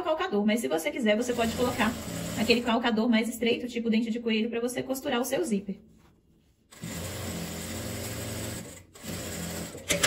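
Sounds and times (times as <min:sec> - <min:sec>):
sewing machine stitching: 0:01.2 - 0:02.8, 0:06.7 - 0:10.0.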